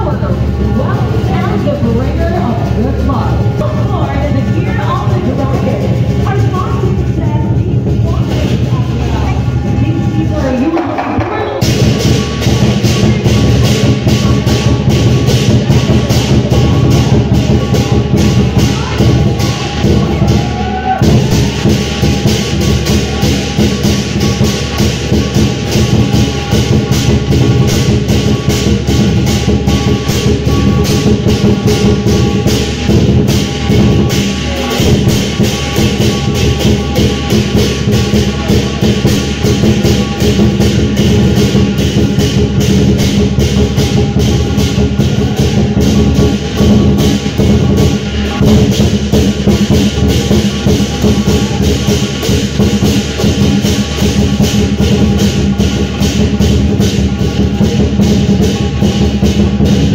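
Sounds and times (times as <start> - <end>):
cymbals crashing: 0.0 - 59.9
drum beating fast rhythm: 0.0 - 59.9.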